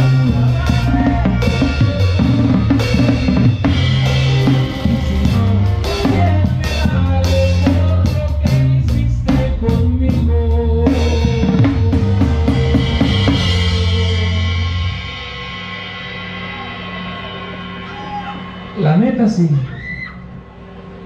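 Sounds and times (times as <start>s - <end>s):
tuba bass line: 0.0s - 15.0s
drum kit fills: 0.0s - 21.0s.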